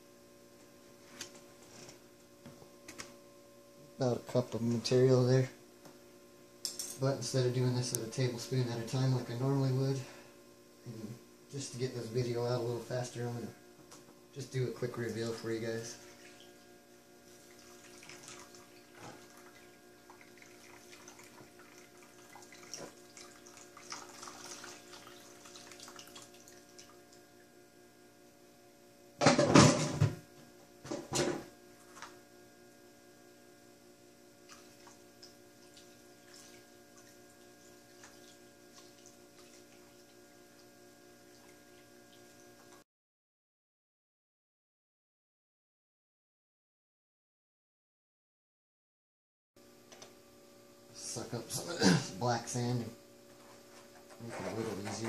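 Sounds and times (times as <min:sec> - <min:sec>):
steady hum: 0:00.0 - 0:42.8, 0:49.6 - 0:55.0.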